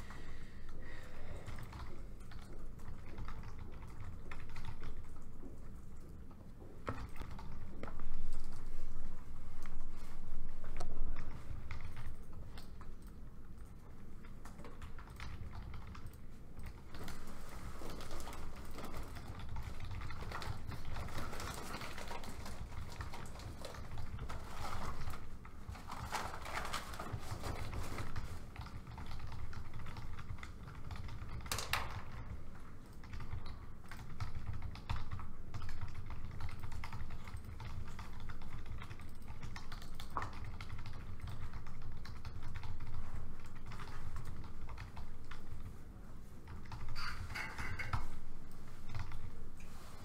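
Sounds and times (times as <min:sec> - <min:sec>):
laptop keyboard typing: 0:00.0 - 0:49.9
low room hum: 0:00.0 - 0:50.0.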